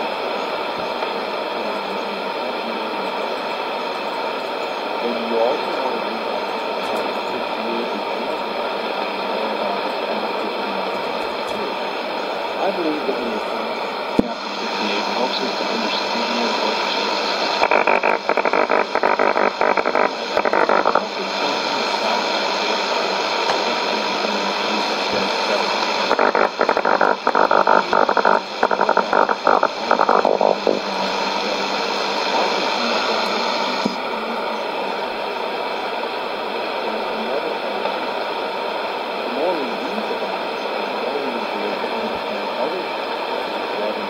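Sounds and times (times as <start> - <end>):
faint crackly radio speech: 0.0 - 44.0
radio static hiss: 0.0 - 44.0.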